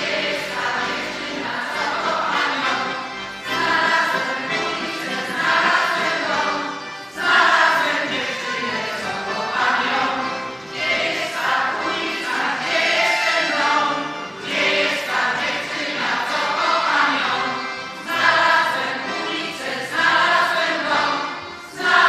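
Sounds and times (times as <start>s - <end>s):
folk choir singing: 0.0s - 22.0s.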